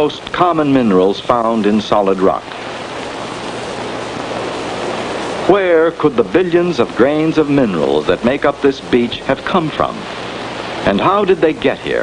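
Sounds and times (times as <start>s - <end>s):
steady rushing hiss: 0.0s - 12.0s.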